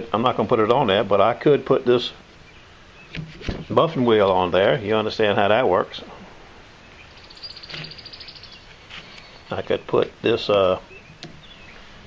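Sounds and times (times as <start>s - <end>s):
background hiss: 0.0s - 12.0s
small bird chirping trill: 6.8s - 9.9s, 10.7s - 11.9s.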